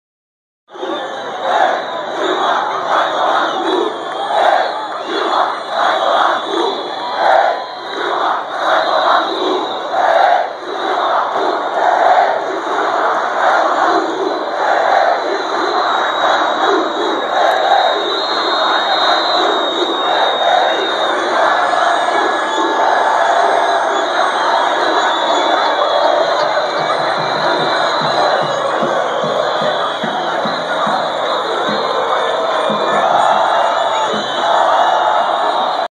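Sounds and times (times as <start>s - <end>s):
crowd chanting: 0.7s - 35.9s.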